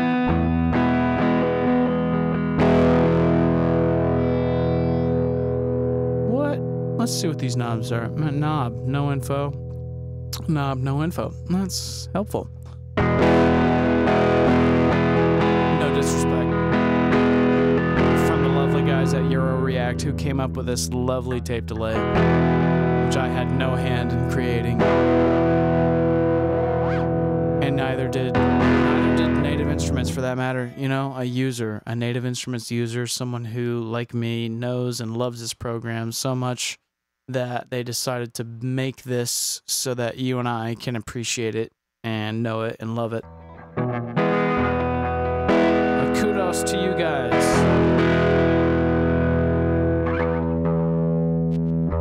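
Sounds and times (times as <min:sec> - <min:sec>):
distorted electric guitar chord: 0:00.0 - 0:08.3, 0:13.0 - 0:20.4, 0:22.0 - 0:30.2, 0:43.2 - 0:52.0.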